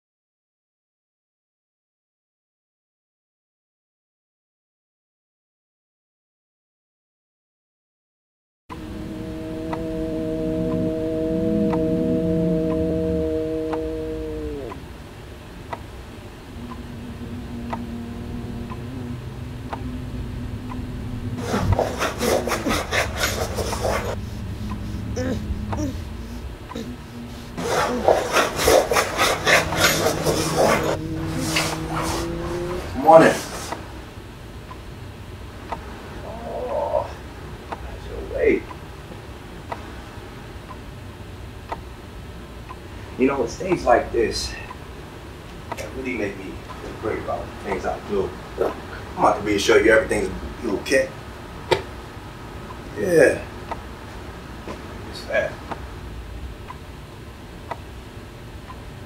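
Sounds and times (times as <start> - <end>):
droning chord sliding down: 8.7 - 34.2
low hum: 8.7 - 37.7
person crying out: 25.0 - 28.3, 36.2 - 37.2.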